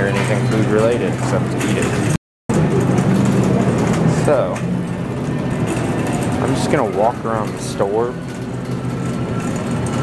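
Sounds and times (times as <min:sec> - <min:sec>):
shopping cart rolling: 0:00.0 - 0:10.0.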